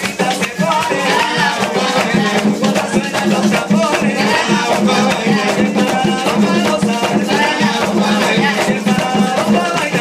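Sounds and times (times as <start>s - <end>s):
barrel drums beating: 0.0s - 10.0s
man singing: 0.0s - 10.0s
maraca shaking: 0.0s - 10.0s.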